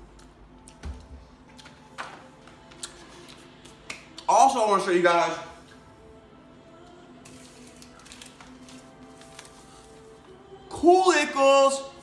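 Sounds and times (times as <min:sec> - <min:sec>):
faint background music: 0:00.0 - 0:12.0
paper packet handled: 0:07.2 - 0:10.3.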